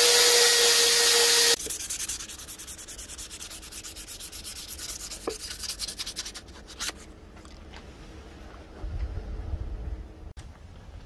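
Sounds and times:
hand-sanding strokes: 0.2s - 7.0s.

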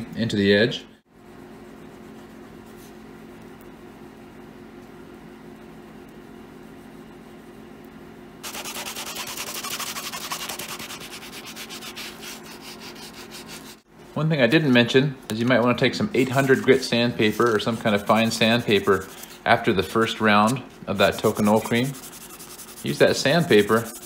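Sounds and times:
faint steady hum: 0.0s - 24.0s
cloth rubbing leather edge: 20.4s - 24.0s.

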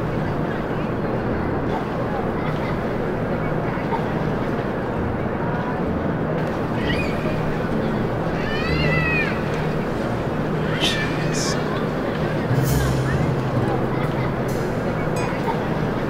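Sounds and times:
high-pitched cry: 10.6s - 11.6s
low hum: 12.4s - 16.0s.

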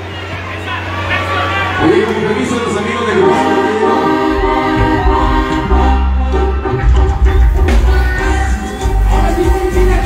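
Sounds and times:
live band music: 1.2s - 10.0s
strong bass: 1.8s - 10.0s
voices singing together: 3.1s - 6.8s, 7.6s - 10.0s.

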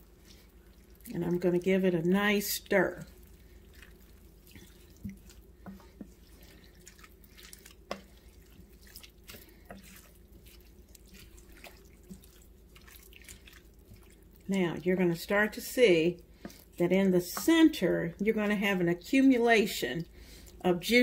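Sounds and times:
wet squelches of stirred food: 0.0s - 21.0s.

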